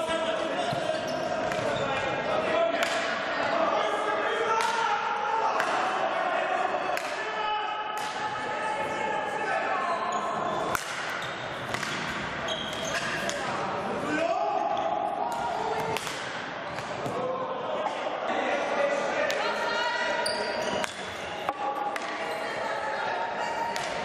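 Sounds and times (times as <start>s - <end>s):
sticks striking ball: 10.7s - 12.1s.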